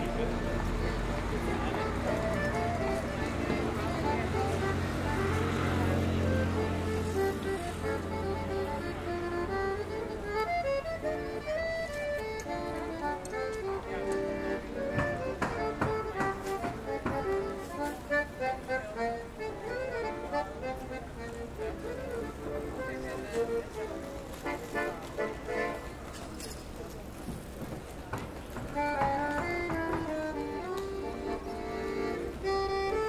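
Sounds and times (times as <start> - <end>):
accordion melody: 0.0 - 27.0, 28.4 - 33.0
street traffic: 0.0 - 33.0
sharp knocks: 14.9 - 17.3, 28.1 - 30.2.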